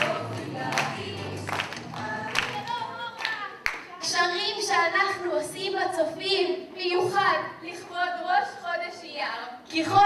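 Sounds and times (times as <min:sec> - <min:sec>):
group singing: 0:00.0 - 0:03.6
hand claps: 0:00.0 - 0:03.9.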